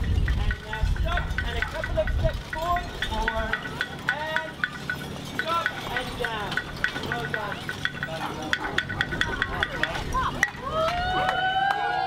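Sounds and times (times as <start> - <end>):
people calling out: 6.9 - 12.0.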